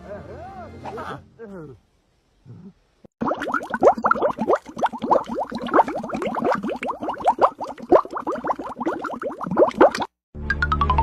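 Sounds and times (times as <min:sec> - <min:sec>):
rising bloop sound effect: 0:09.4 - 0:11.0.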